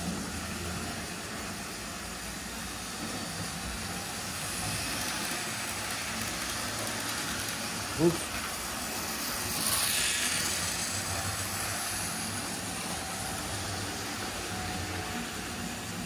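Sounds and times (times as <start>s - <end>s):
model train motors whirring: 0.0s - 16.0s.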